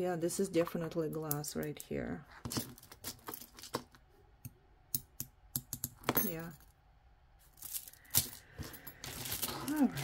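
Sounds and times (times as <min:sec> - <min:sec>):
plastic beads rattling: 0:07.5 - 0:10.0.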